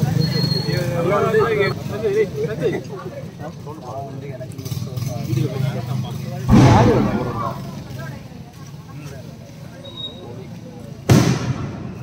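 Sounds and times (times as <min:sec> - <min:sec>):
firework bang: 0:06.5 - 0:08.2.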